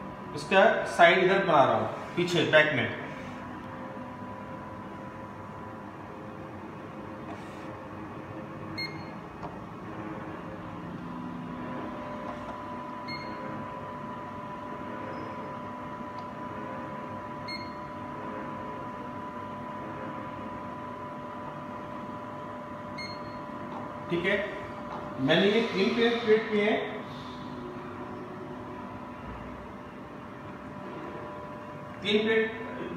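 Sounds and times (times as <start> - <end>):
measuring machine humming: 0.0 - 32.9.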